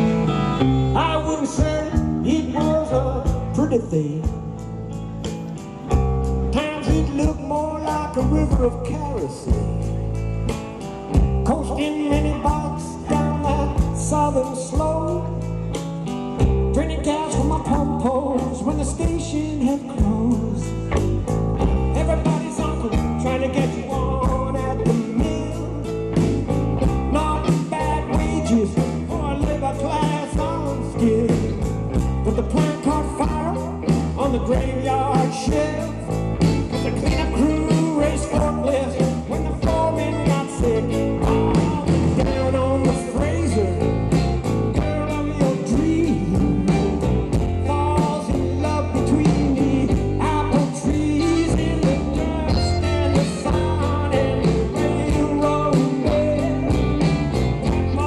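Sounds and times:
drums: 0.0s - 58.0s
electric bass: 0.0s - 58.0s
strummed guitar: 0.0s - 58.0s.

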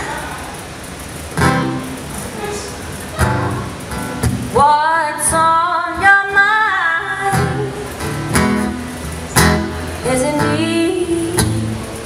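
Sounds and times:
acoustic guitar strumming: 0.9s - 12.0s.

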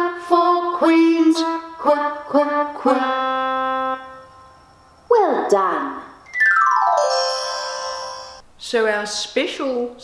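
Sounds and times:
electronic chime sliding down: 6.3s - 8.4s.

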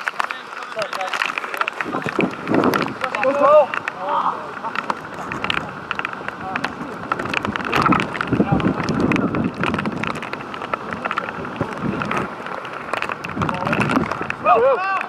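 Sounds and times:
loud shout: 14.4s - 15.0s.

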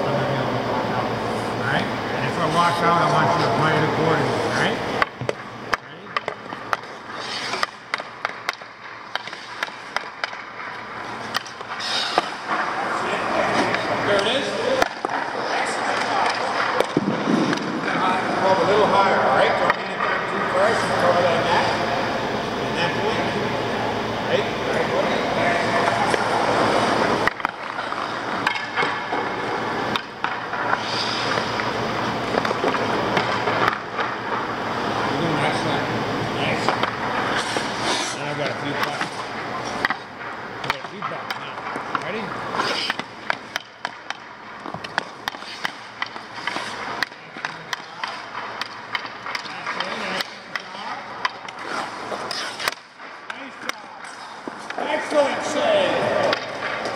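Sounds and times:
stick and puck clicks: 5.0s - 17.7s, 26.9s - 34.4s, 36.6s - 55.2s, 56.2s - 56.9s
skates scraping on ice: 6.2s - 21.8s, 25.0s - 35.7s, 36.5s - 56.9s.

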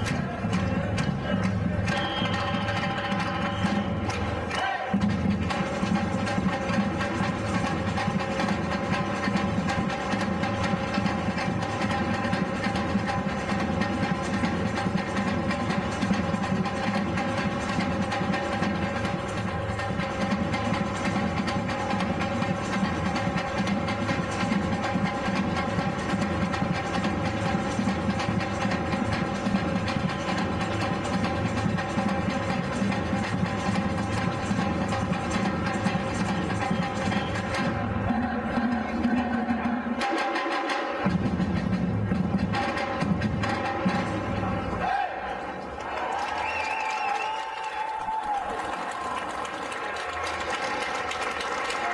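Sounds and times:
samba drum group playing: 0.0s - 51.9s.

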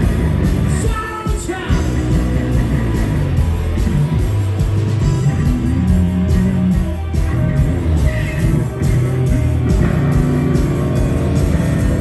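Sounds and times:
live rock band playing loud: 0.0s - 12.0s.

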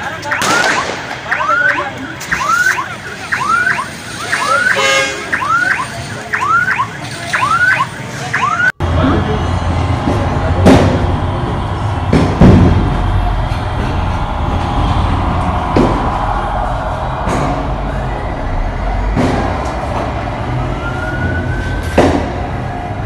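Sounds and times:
heavy street traffic rumble: 0.0s - 23.0s
truck passing: 0.0s - 23.0s
loud sharp shots: 0.2s - 4.7s.

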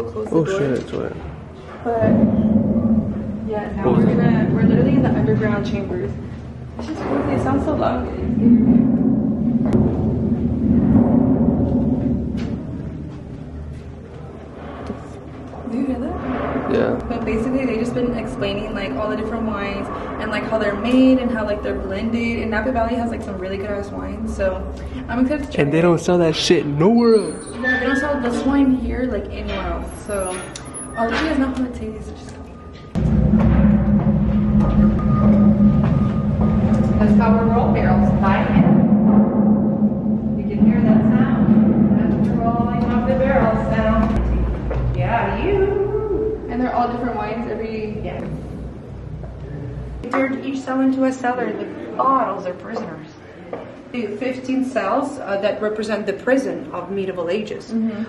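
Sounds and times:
loud low rumble: 1.1s - 27.1s, 31.3s - 50.1s.

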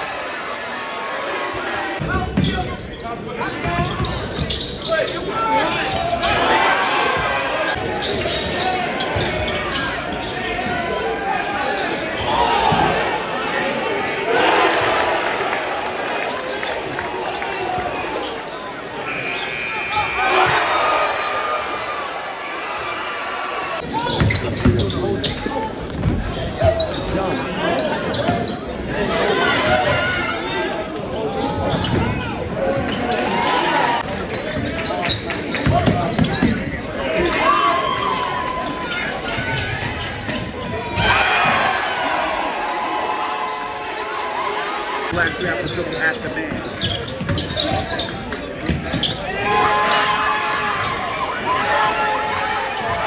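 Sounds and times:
players' voices: 0.0s - 53.0s
sneakers squeaking: 2.0s - 13.0s, 16.3s - 22.0s, 24.0s - 28.9s, 31.5s - 32.2s, 34.0s - 37.5s, 38.6s - 41.2s, 45.2s - 49.4s
indistinct voices: 17.7s - 22.4s.

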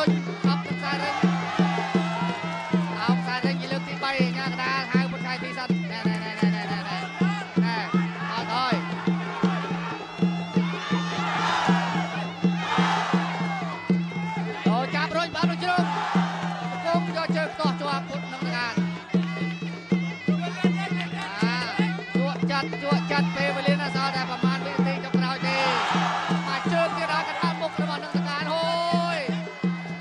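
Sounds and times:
crowd noise: 0.0s - 30.0s
steady drumbeat: 0.0s - 30.0s.

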